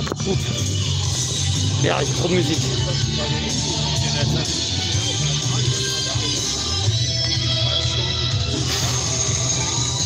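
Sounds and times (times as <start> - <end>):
loud music over loudspeakers: 0.0 - 10.0.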